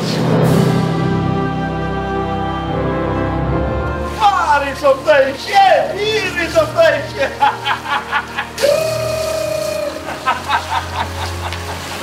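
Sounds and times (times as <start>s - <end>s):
low musical backing: 0.0s - 12.0s.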